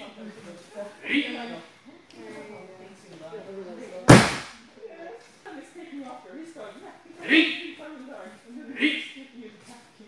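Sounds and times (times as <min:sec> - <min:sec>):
body slapping a mat: 0:04.1 - 0:04.5.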